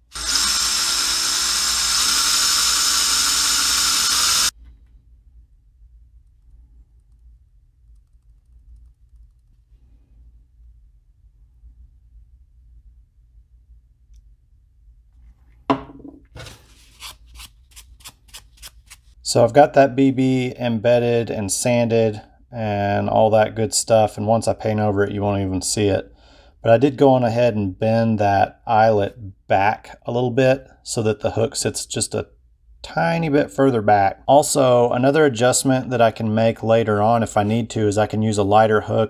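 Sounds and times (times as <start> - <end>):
cordless drill boring wood: 0.0 - 4.5
plastic bottle knocking on workbench: 15.7 - 16.2.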